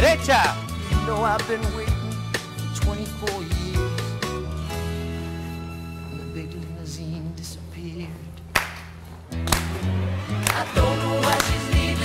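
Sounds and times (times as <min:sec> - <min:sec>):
dancers clapping hands: 0:08.6 - 0:12.0
line-dance music: 0:09.3 - 0:12.0.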